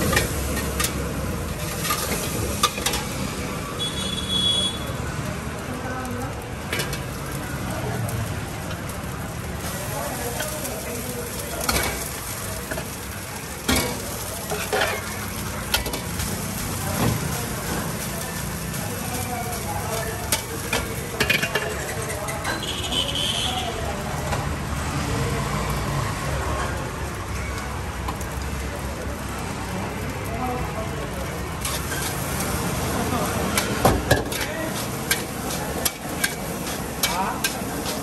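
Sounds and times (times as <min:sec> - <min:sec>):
metal utensils scraping a wok: 0:00.0 - 0:03.4, 0:09.6 - 0:22.9, 0:31.5 - 0:38.0
frying sizzle: 0:00.0 - 0:38.0.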